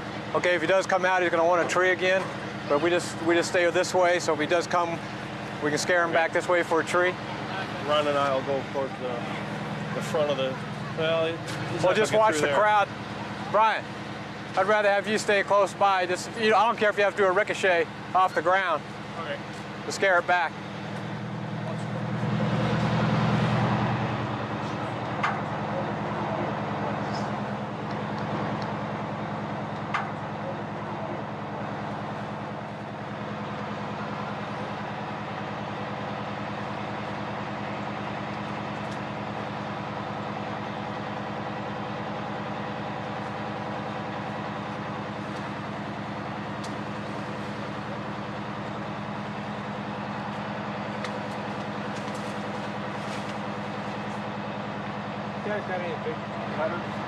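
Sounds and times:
fire truck engine droning: 0.0s - 57.0s.

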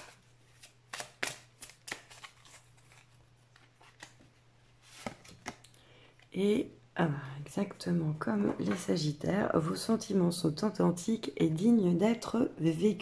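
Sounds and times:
cards being shuffled: 0.0s - 5.7s.

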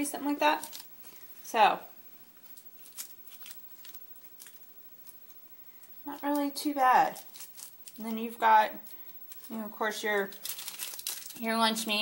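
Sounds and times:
foil crinkling: 0.4s - 1.4s, 2.2s - 12.0s.

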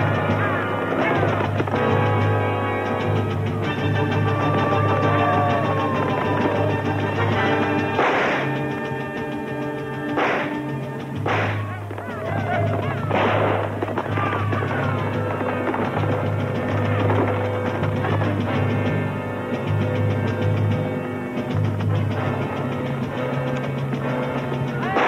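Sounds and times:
orchestral western film score: 0.0s - 25.0s
horsemen yelling war cries: 3.6s - 7.9s, 11.5s - 15.9s
rifle shots: 7.9s - 8.7s, 10.1s - 17.5s.

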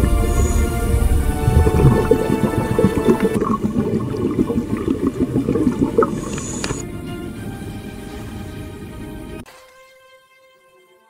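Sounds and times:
water splashing and streaming: 0.0s - 10.2s
music: 0.0s - 11.0s.

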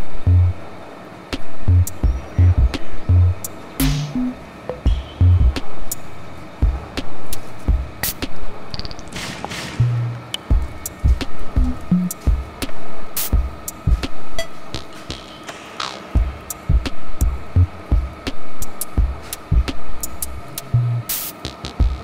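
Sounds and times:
background music with drum beat: 1.4s - 8.4s, 10.4s - 22.0s
low drum thumps: 3.8s - 5.7s, 6.6s - 7.1s, 7.7s - 8.1s, 10.5s - 12.6s, 16.2s - 18.3s, 19.0s - 19.7s.

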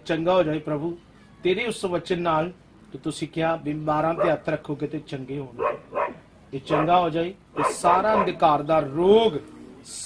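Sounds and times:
man praying aloud forcefully: 6.7s - 8.6s.

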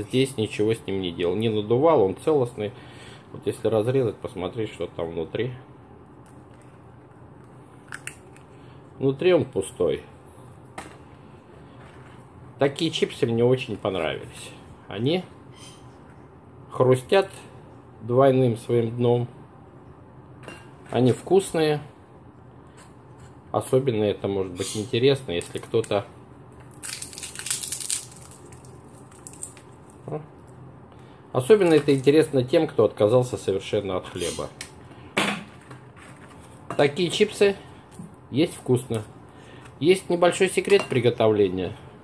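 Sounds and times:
hands handling potato chips: 25.3s - 30.6s.

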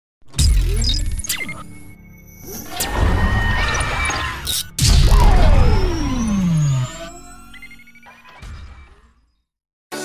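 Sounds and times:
heavy booming hit: 4.8s - 7.0s
tone falling in pitch: 4.9s - 7.7s.

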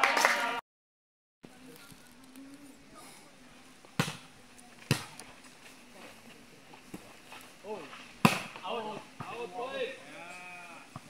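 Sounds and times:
ball being struck: 4.0s - 4.3s, 4.9s - 5.2s, 8.2s - 9.4s.

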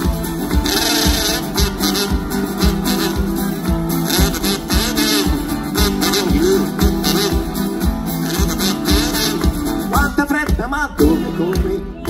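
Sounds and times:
live band playing: 0.0s - 12.0s
kick drum beat: 8.9s - 12.0s.

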